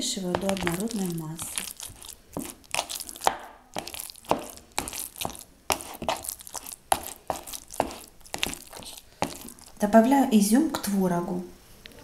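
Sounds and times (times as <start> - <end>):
metal spoon scraping plastic bowl: 0.0 - 9.8
soft squelching: 0.0 - 9.9.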